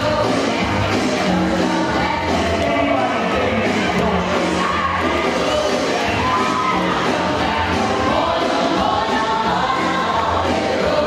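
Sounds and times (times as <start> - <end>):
dance music with singing: 0.0 - 11.0.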